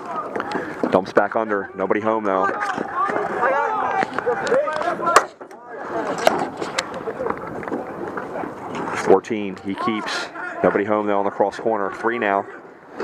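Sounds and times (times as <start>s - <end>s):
voices of players and onlookers: 0.0s - 13.0s.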